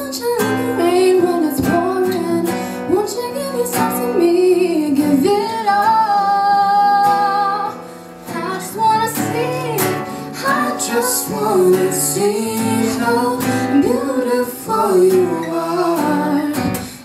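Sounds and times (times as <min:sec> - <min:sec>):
acoustic guitar: 0:00.0 - 0:17.0
woman singing slow melody: 0:00.0 - 0:17.0.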